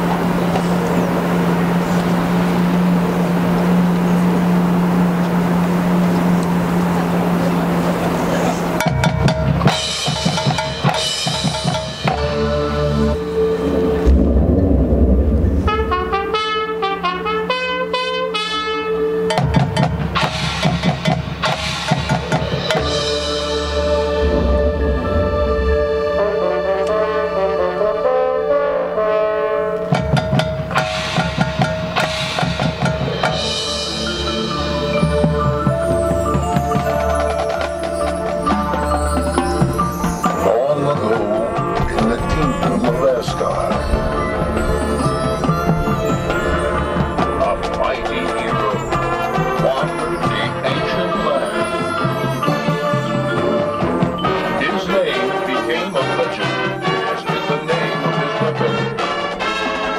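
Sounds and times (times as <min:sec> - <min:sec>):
marching band playing: 0:00.0 - 0:59.9
fast mallet-keyboard runs: 0:06.3 - 0:14.8, 0:30.2 - 0:59.6
drum and percussion hits: 0:08.8 - 0:12.7, 0:14.0 - 0:16.4, 0:19.3 - 0:26.3, 0:30.0 - 0:55.2
heavy low hits: 0:12.0 - 0:16.5, 0:22.5 - 0:26.9, 0:41.6 - 0:51.7.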